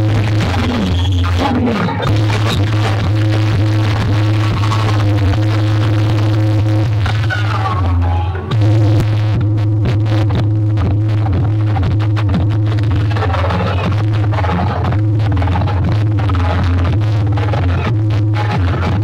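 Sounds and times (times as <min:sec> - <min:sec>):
loud bass-heavy electronic music: 0:00.0 - 0:19.0.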